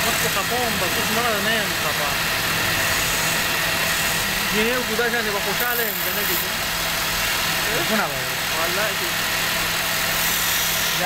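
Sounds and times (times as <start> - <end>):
wood lathe motor hum: 0.0 - 11.0
chisel cutting wood shavings: 5.4 - 6.6.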